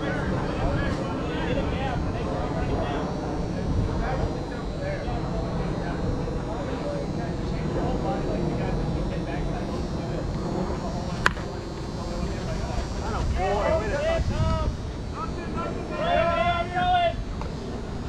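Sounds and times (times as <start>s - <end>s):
players shouting: 10.9s - 17.6s
bat cracking against ball: 11.2s - 11.5s.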